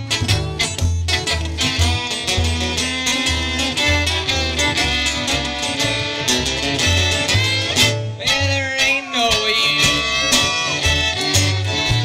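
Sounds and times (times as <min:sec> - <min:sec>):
acoustic guitar strumming: 0:00.0 - 0:12.0
pulsing bass notes: 0:00.0 - 0:12.0
fiddle sliding into held note: 0:01.2 - 0:12.0.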